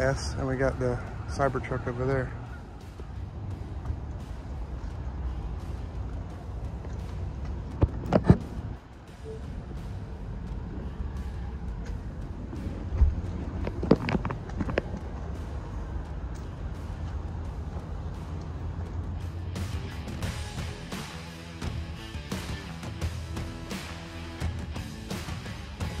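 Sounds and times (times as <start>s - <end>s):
low outdoor rumble: 0.0s - 20.9s
sharp clicks and knocks: 6.9s - 8.6s.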